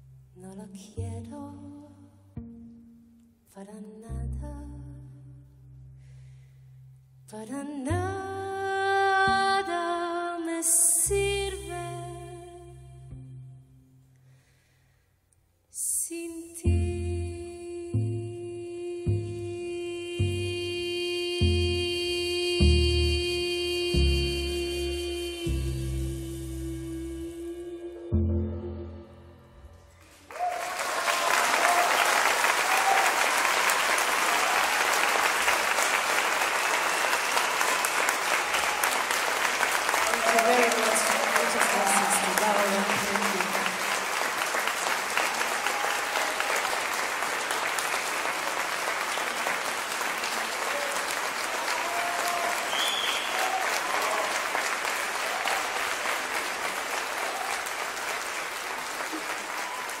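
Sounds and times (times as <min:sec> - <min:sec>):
audience applauding: 0:30.0 - 1:00.0
short whistle: 0:52.7 - 0:53.4.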